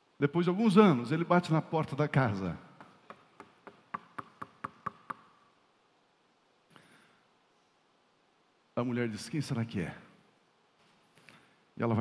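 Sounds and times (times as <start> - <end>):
knuckles knocking on wood: 2.8 - 5.3.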